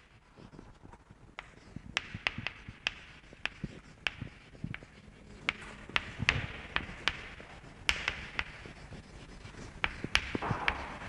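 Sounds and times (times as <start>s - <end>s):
chalk tapping on chalkboard: 0.0s - 11.0s
faint chalk scratching: 0.0s - 11.0s.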